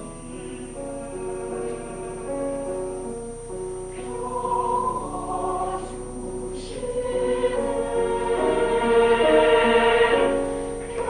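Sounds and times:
mixed choir singing: 0.0s - 3.1s, 3.9s - 11.0s.

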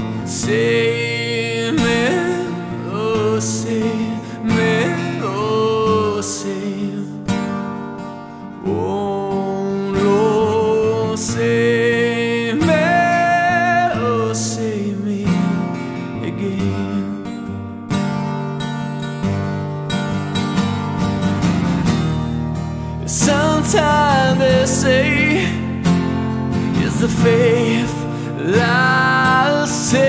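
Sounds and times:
strummed acoustic guitar: 0.0s - 30.0s
man singing long notes: 0.2s - 7.1s, 23.0s - 25.6s, 26.8s - 30.0s.

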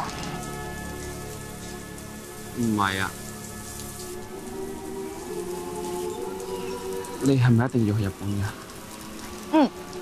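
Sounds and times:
soft background music: 0.0s - 10.0s
steady rain falling: 0.0s - 10.0s.

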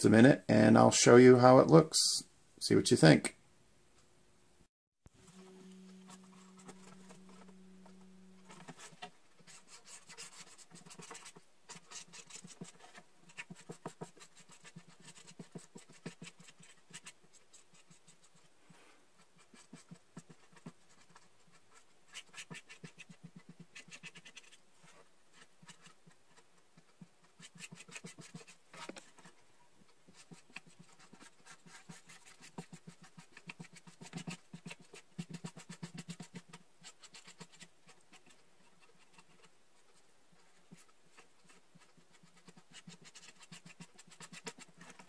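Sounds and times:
marker scratching on plastic: 6.1s - 18.5s, 19.2s - 45.0s.

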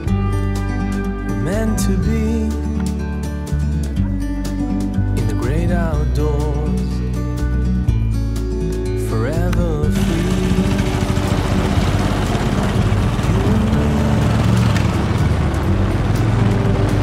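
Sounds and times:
music with sung gliding note: 9.0s - 17.0s
motorcycle engine pulling away: 9.9s - 17.0s.

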